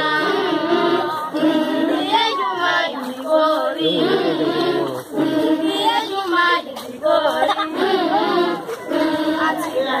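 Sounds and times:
children singing in chorus: 0.0s - 10.0s.

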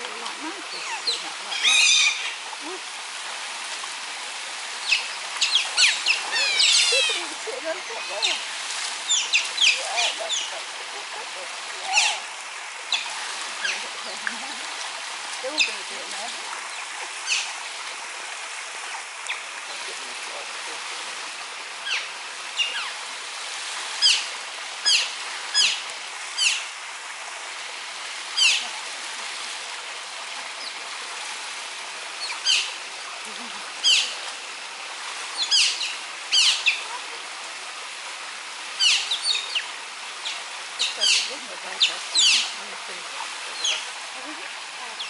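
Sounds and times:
steady background hiss: 0.0s - 45.0s.

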